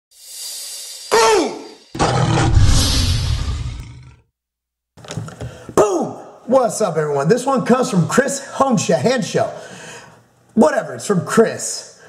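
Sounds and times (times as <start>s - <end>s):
swelling hiss: 0.1s - 3.9s.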